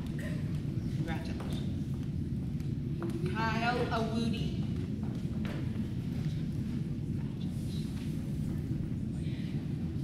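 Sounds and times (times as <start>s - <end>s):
low rumble of crowded gymnasium: 0.0s - 10.0s.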